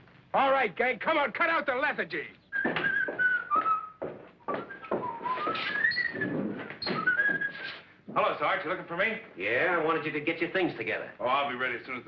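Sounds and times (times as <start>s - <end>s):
man whistling a tune: 2.5s - 7.8s.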